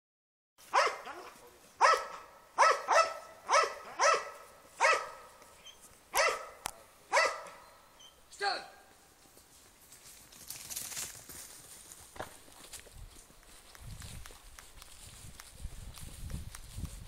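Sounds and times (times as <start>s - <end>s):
dog barking: 0.7s - 5.4s, 6.1s - 7.7s.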